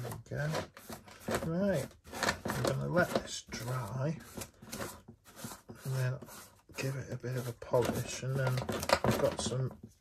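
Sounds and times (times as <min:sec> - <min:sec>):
man speaking: 0:01.4 - 0:04.2, 0:05.8 - 0:09.8.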